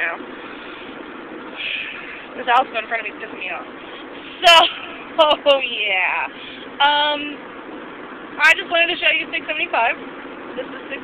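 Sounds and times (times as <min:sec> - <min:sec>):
car cabin road and engine noise: 0:00.0 - 0:11.0.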